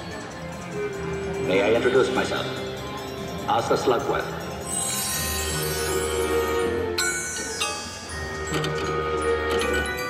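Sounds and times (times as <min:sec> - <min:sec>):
slot machine bonus music: 0:00.1 - 0:10.0.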